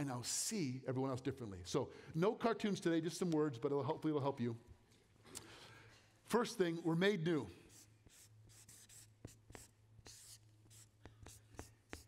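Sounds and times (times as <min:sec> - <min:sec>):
marker pen squeaking on paper: 0:07.7 - 0:12.0.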